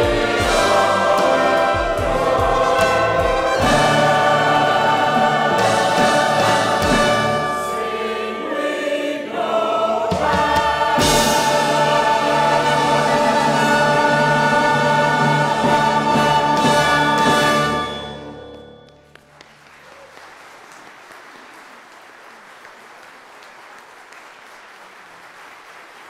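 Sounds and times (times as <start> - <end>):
low beats: 0.0 - 8.6
choir singing: 0.0 - 18.4
small orchestra: 0.0 - 19.0.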